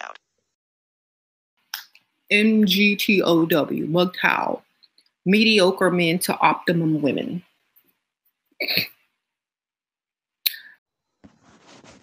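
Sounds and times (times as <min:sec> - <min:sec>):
person coughing: 0:08.6 - 0:09.0.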